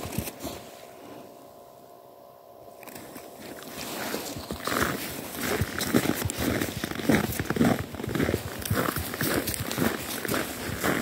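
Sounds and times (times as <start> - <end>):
footsteps crunching on snow: 2.8 - 11.0.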